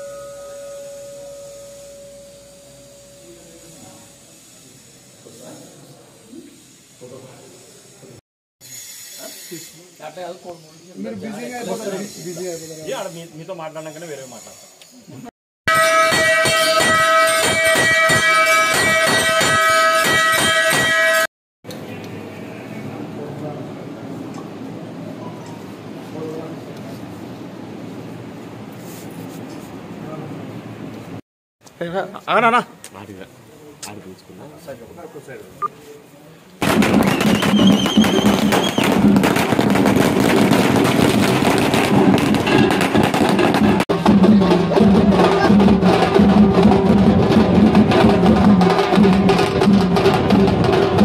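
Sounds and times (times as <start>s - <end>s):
bell rung continuously: 0.0s - 4.2s, 15.7s - 21.3s
firecrackers banging: 15.7s - 21.3s, 36.6s - 51.0s
shrill wavering whistle: 37.0s - 38.9s.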